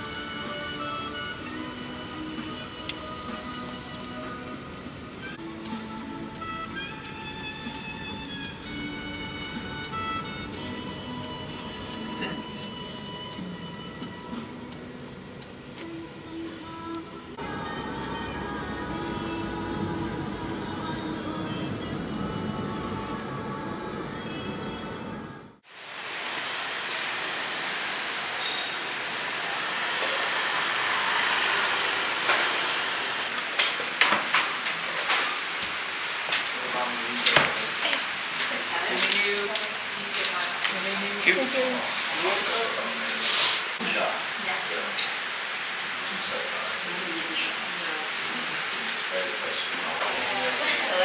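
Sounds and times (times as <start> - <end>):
background music: 0.0 - 25.6
steady room noise: 0.0 - 51.0.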